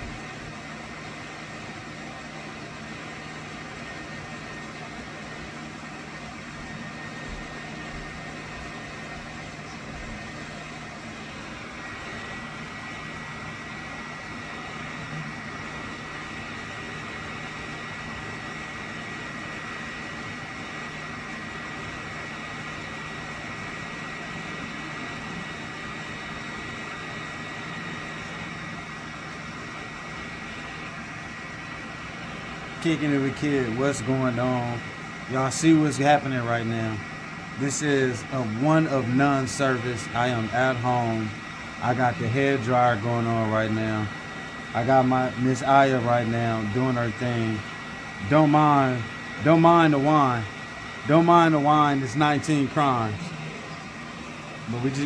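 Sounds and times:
hair dryer running: 0.0 - 55.0.

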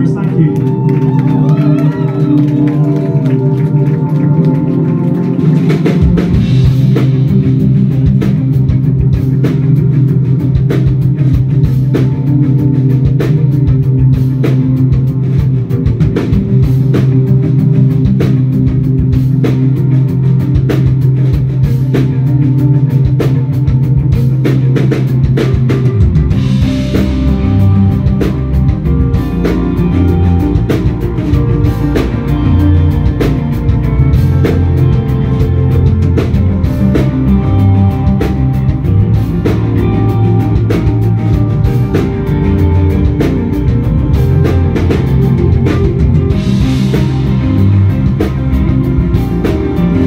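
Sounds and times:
rock band playing live: 0.0 - 50.0.

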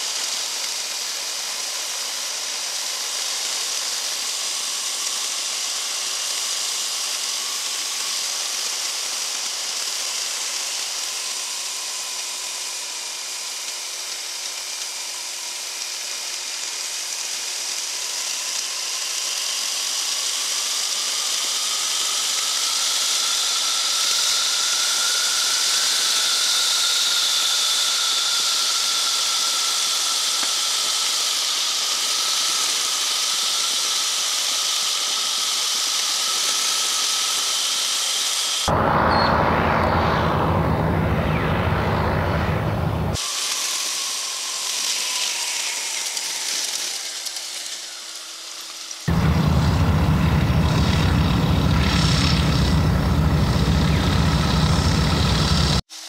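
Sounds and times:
engine and propeller whine: 38.3 - 55.9
wind rushing: 38.7 - 43.2.

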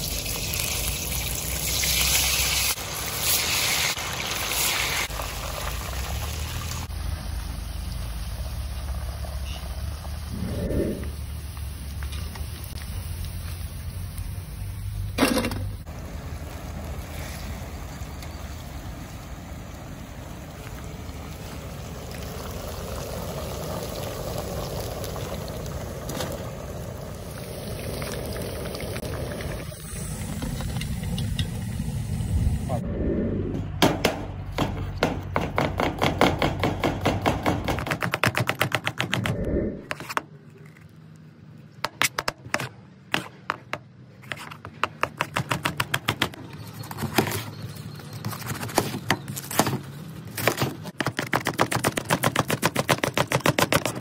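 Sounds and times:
food sizzling in hot oil: 0.0 - 10.3, 21.3 - 32.6
constant low rumble: 5.1 - 35.6.

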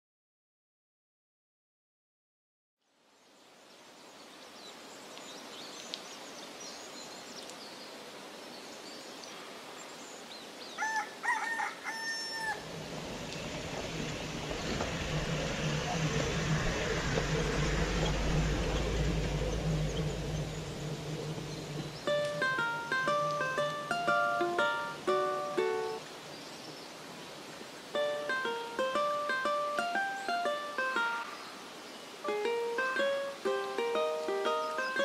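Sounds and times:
rooster crowing: 10.8 - 16.5
low steady rumble: 12.5 - 25.3.

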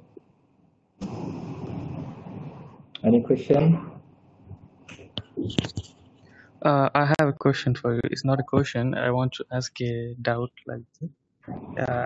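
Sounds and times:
microphone background rumble and hiss: 1.0 - 4.0, 4.9 - 6.0, 6.6 - 12.0.

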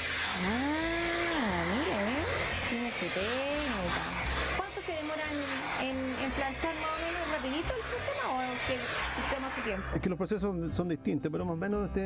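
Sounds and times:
steam iron hissing: 0.0 - 9.9
people talking: 4.6 - 9.8.

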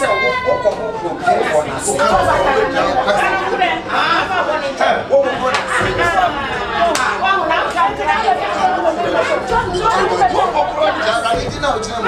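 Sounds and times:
overlapping excited chatter: 0.0 - 12.0.

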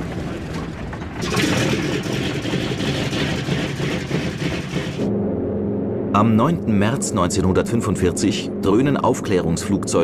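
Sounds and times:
radial piston engine running: 1.2 - 5.1.

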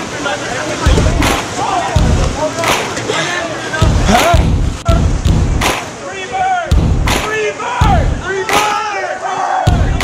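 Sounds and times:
loud shouting voices: 0.0 - 5.2, 5.8 - 10.0
music with heavy bass thumps: 0.9 - 1.4, 2.0 - 2.4, 3.8 - 5.8, 6.7 - 8.3, 9.7 - 10.0.

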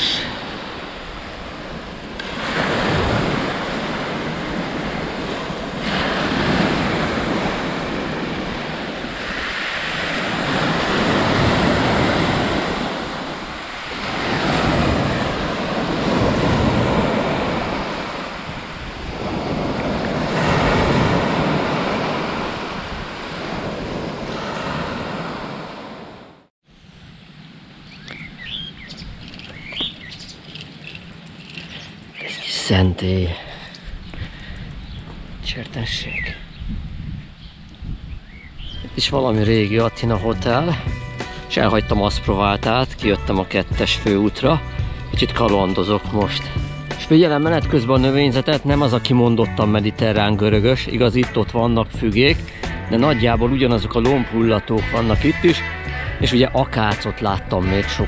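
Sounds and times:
waves breaking on pebble beach: 0.0 - 26.2
bird chirps: 27.8 - 32.5, 37.4 - 38.9.

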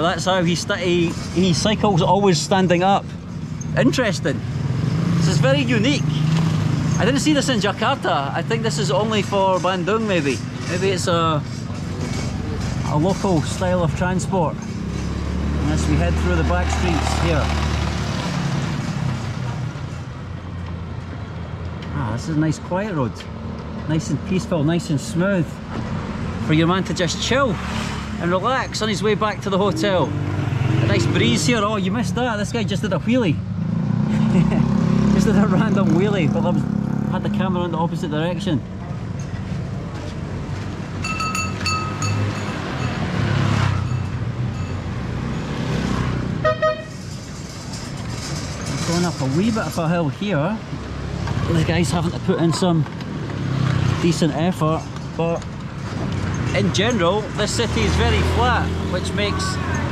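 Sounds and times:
cycle rickshaw rumbling: 0.0 - 59.9
motorbike engines running: 0.0 - 59.9
road and wind noise: 0.0 - 59.9
vehicle horn honking: 46.4 - 47.0.

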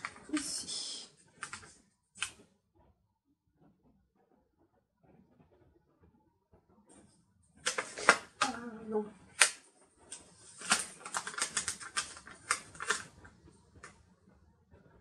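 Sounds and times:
paper pages clicking and rustling: 0.0 - 0.7, 1.4 - 2.4, 7.6 - 8.6, 9.3 - 14.0.

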